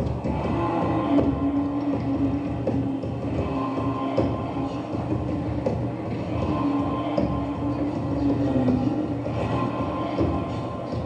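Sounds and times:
droning tone: 0:00.0 - 0:11.0.

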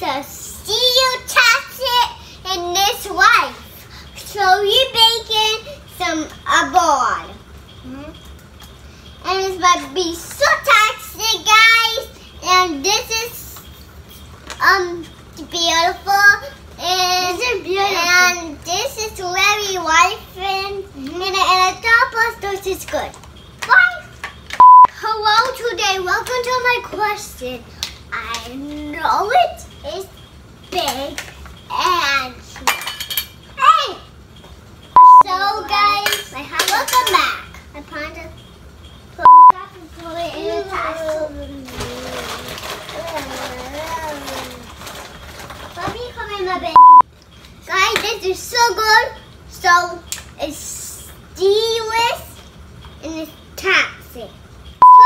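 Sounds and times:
young girl speaking: 0:00.0 - 0:08.2, 0:09.2 - 0:13.7, 0:14.6 - 0:24.2, 0:24.9 - 0:32.8, 0:33.6 - 0:34.2, 0:35.0 - 0:38.4, 0:39.2 - 0:44.8, 0:45.8 - 0:47.0, 0:47.6 - 0:52.4, 0:53.0 - 0:55.0
electronic beep: 0:24.6 - 0:24.9, 0:34.9 - 0:35.3, 0:39.2 - 0:39.6, 0:46.8 - 0:47.0, 0:54.8 - 0:55.0.

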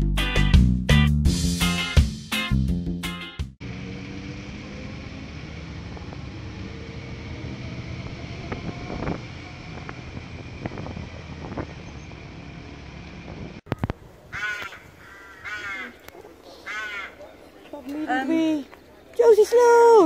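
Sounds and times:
motorcycle engine at low speed: 0:03.6 - 0:13.7
wind noise: 0:05.8 - 0:15.0
bird calling: 0:13.7 - 0:19.2.

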